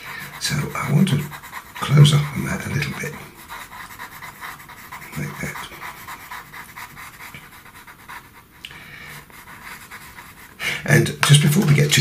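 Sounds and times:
pencil scratching on paper: 0:00.0 - 0:12.0.

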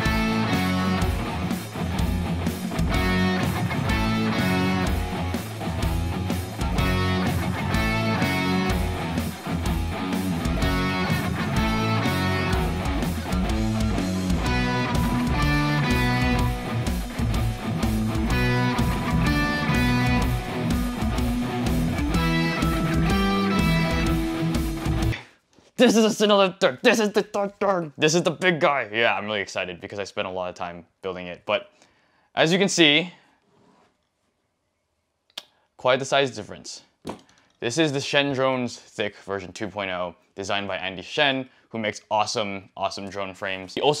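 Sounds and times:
guitar-driven rock music: 0:00.0 - 0:25.2.

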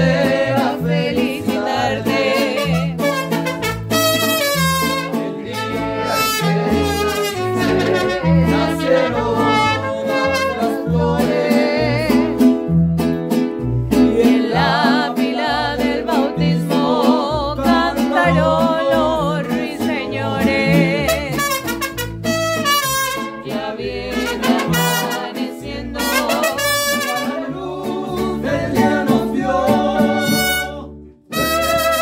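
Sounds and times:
bass line: 0:00.0 - 0:32.0
mariachi band playing: 0:00.0 - 0:32.0
trumpets playing melody: 0:02.5 - 0:10.8, 0:21.0 - 0:25.4, 0:26.0 - 0:27.6, 0:30.0 - 0:32.0.

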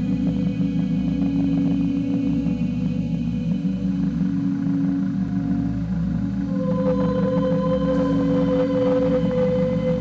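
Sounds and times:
low drone of held tones: 0:00.0 - 0:10.0.

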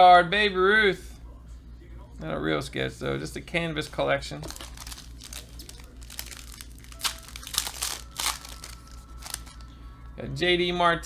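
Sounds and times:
foil wrapper tearing and crinkling: 0:04.4 - 0:09.6.

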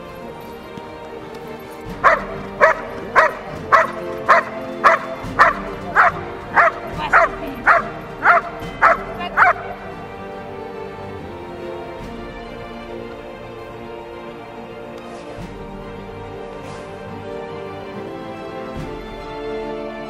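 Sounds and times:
background music: 0:00.0 - 0:20.0
dog barking: 0:02.0 - 0:10.0.

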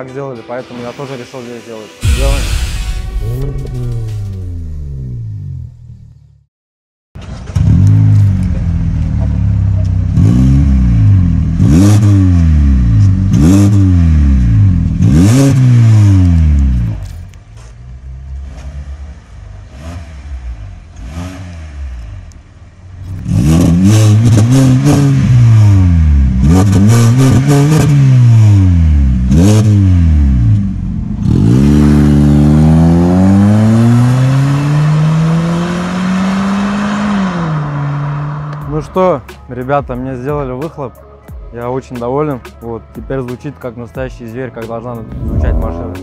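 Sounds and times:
car engine revving: 0:07.2 - 0:39.0, 0:45.0 - 0:46.0.

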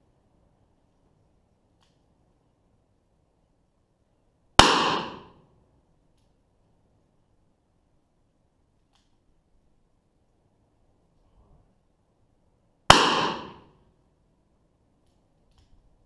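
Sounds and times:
revolver gunshot: 0:04.6 - 0:05.4, 0:12.9 - 0:13.7.

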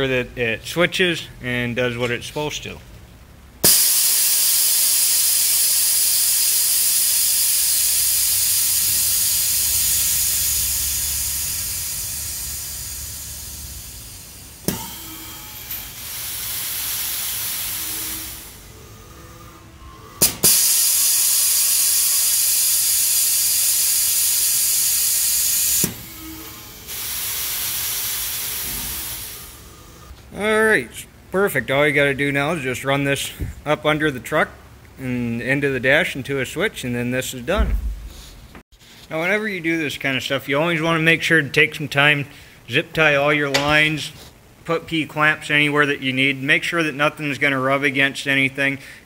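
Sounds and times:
air valve clicking: 0:03.6 - 0:18.7, 0:20.2 - 0:29.6
compressed air hissing: 0:03.6 - 0:30.1.

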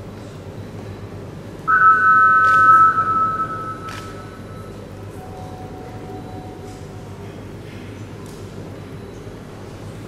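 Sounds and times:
two-pitch electronic beep: 0:01.7 - 0:04.8.

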